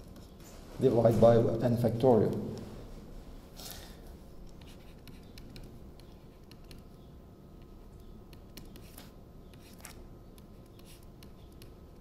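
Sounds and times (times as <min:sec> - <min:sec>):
stylus scratching on tablet screen: 0:04.6 - 0:07.0, 0:07.6 - 0:12.0.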